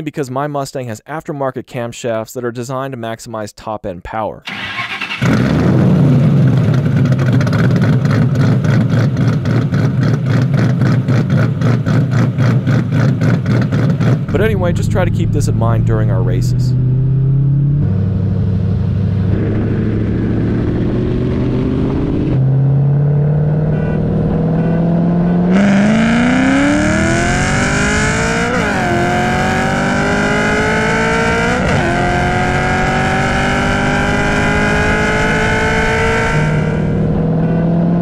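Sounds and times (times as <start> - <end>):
car engine revving: 4.5 - 38.0.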